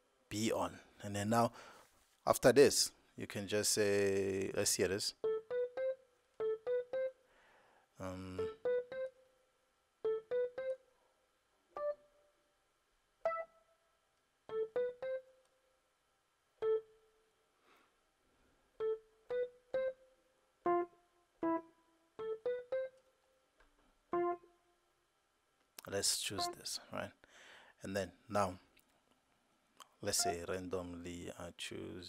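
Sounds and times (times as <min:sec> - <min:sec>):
electric piano notes: 0:05.2 - 0:07.1, 0:10.0 - 0:10.8, 0:14.5 - 0:15.2, 0:18.8 - 0:19.9, 0:20.6 - 0:21.6, 0:22.2 - 0:23.0, 0:24.1 - 0:24.5.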